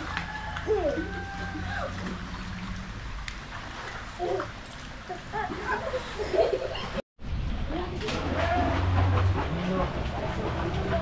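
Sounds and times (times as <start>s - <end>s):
faint water sounds: 0.0s - 11.0s.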